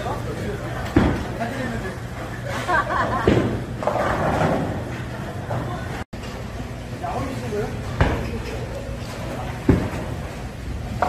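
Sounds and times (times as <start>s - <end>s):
bowling balls rolling: 0.2s - 6.6s, 7.8s - 11.0s.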